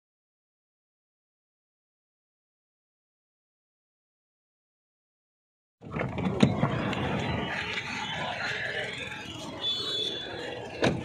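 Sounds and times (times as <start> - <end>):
outdoor hubbub: 5.8 - 11.0.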